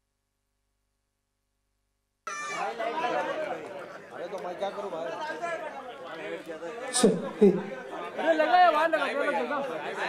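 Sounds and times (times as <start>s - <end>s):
crowd chatter: 2.3s - 10.0s.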